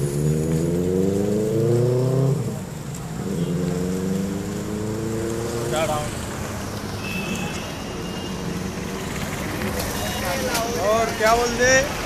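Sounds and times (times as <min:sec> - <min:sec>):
vehicle engines accelerating: 0:00.0 - 0:12.0.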